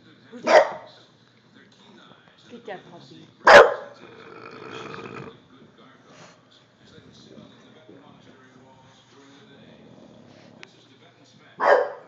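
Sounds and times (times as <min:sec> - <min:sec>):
dog barking: 0:00.4 - 0:00.9, 0:03.4 - 0:04.0, 0:11.6 - 0:12.0.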